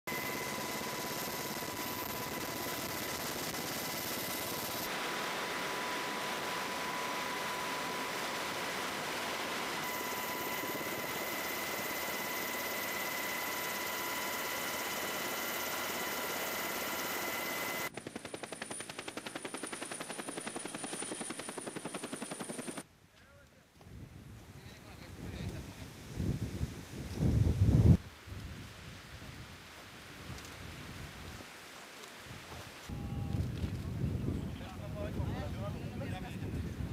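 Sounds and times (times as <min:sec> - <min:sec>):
helicopter rotor blades chopping: 0:00.1 - 0:22.8
helicopter roar with high whine: 0:00.1 - 0:22.9.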